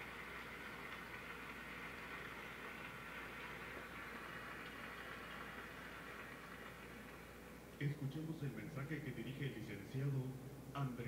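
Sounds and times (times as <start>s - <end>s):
faint audience applause: 0.0s - 7.5s.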